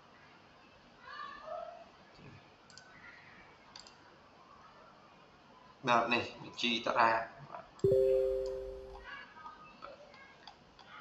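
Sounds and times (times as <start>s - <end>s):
computer mouse clicks: 2.7s - 2.9s, 3.7s - 4.0s.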